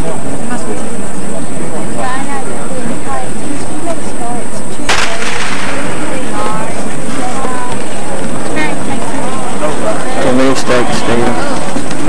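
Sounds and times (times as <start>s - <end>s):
starting pistol shot: 4.9s - 6.2s
spectators calling out: 4.9s - 12.0s.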